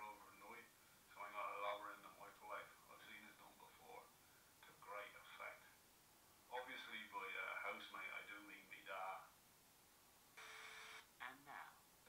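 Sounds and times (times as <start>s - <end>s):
man's voice: 0.0s - 4.0s.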